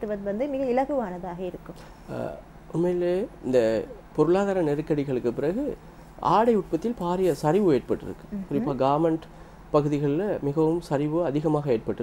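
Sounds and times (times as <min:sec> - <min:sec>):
woman speaking: 0:00.0 - 0:01.9, 0:08.3 - 0:08.8
man speaking: 0:02.1 - 0:12.0.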